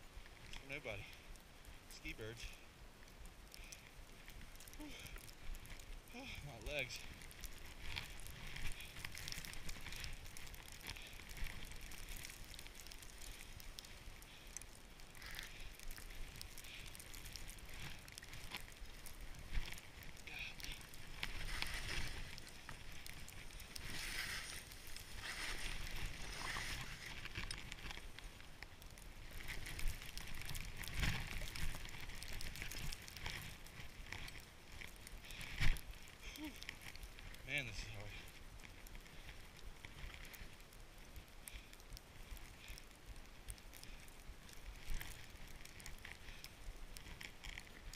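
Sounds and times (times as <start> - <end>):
skis hissing through snow: 23.8 - 27.2.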